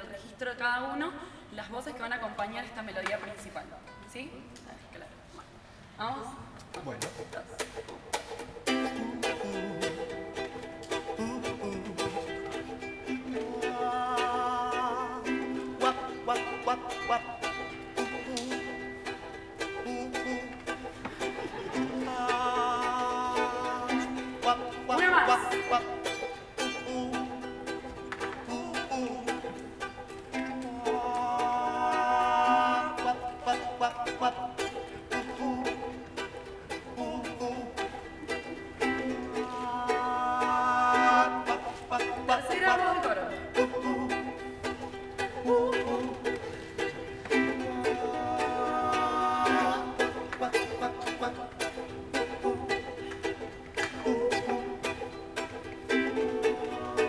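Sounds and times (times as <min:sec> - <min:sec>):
ukuleles strumming: 0:00.0 - 0:04.8, 0:06.6 - 0:57.0
voices singing harmony: 0:30.6 - 0:36.0, 0:38.8 - 0:42.6, 0:47.3 - 0:52.9, 0:53.8 - 0:55.0, 0:55.9 - 0:57.0.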